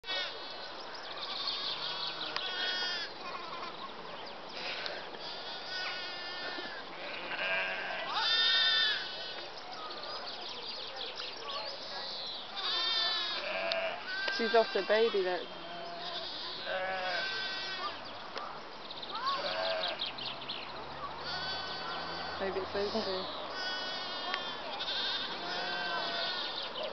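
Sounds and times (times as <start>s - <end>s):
lambs bleating: 1.2s - 3.7s, 4.6s - 9.4s, 12.6s - 18.0s, 19.2s - 20.0s, 21.2s - 26.6s.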